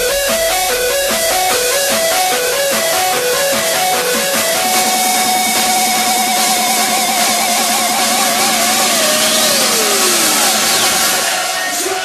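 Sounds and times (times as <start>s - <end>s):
hardstyle electronic music: 0.0s - 12.0s.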